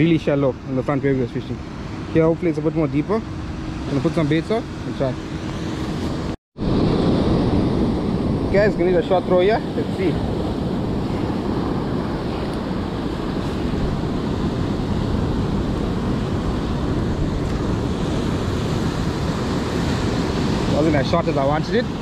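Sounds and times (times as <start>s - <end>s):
wind rumbling on microphone: 0.0s - 22.0s
surf washing over rocks: 6.6s - 22.0s.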